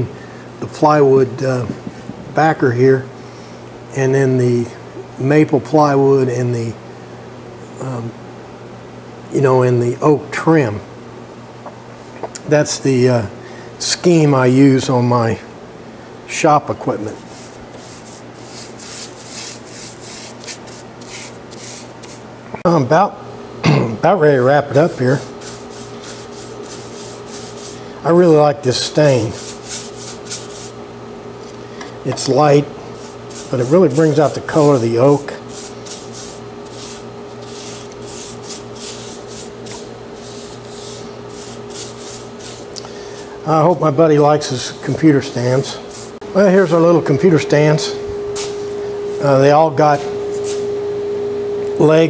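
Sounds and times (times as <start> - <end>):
steady low hum: 0.0 - 52.0
paintbrush swishing on wood: 17.0 - 22.2, 24.8 - 27.8, 28.9 - 30.8, 33.0 - 43.3, 44.5 - 46.2.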